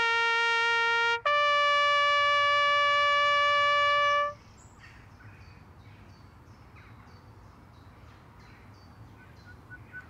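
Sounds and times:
brass horn long high note: 0:00.0 - 0:04.4
faint bird chirps: 0:04.4 - 0:10.0.

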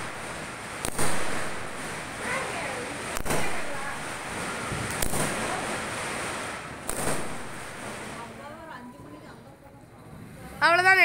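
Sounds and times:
firework bang: 0:00.0 - 0:08.6
firework hissing sparks: 0:00.0 - 0:08.6.

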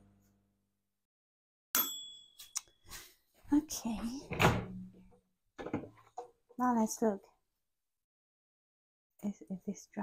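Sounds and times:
microwave bell ding: 0:01.8 - 0:02.6.

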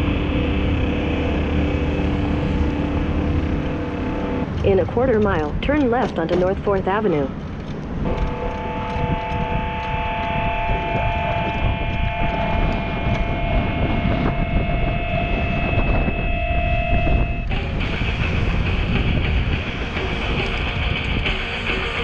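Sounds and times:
steady high tones: 0:00.0 - 0:20.5
wind buffeting microphone: 0:00.0 - 0:22.0.

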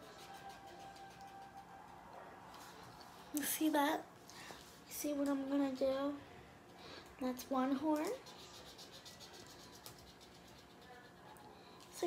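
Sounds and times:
marker scratching on paper: 0:07.9 - 0:11.4.

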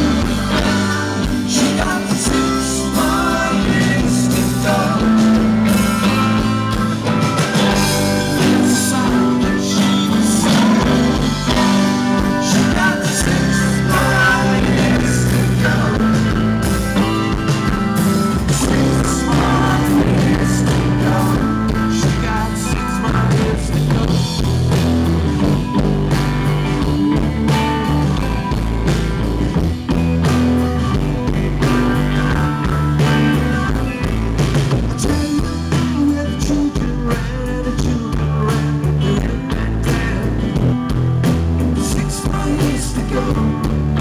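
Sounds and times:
bass guitar: 0:00.0 - 0:44.0
drum kit: 0:00.0 - 0:44.0
electric guitars: 0:00.0 - 0:44.0
live rock band playing: 0:00.0 - 0:44.0.

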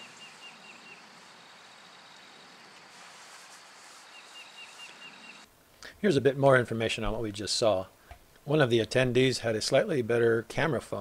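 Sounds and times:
bird chirping: 0:00.0 - 0:02.7, 0:04.0 - 0:05.5
faint outdoor ambience: 0:00.0 - 0:11.0.

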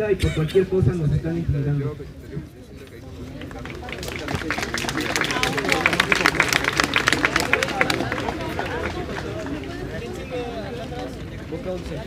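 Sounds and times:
murmur of voices: 0:00.0 - 0:12.0
crowd clapping: 0:03.2 - 0:10.4.

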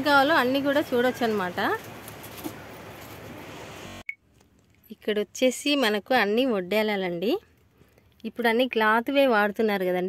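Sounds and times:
shop background noise: 0:00.0 - 0:04.2.

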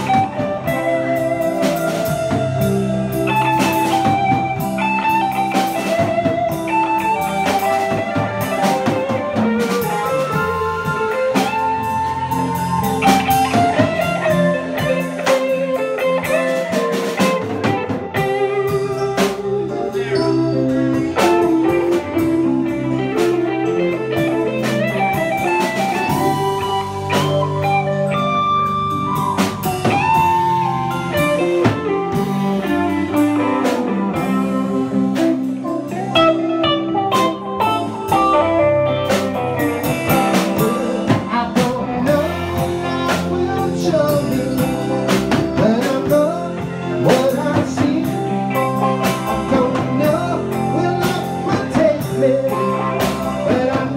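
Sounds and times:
bass: 0:00.0 - 0:53.9
drum kit: 0:00.0 - 0:53.9
guitar with bent sliding notes: 0:00.0 - 0:53.9.

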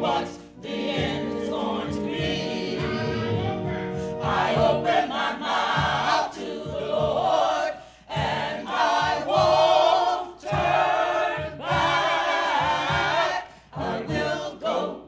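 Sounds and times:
choir singing gospel song: 0:00.0 - 0:15.0.

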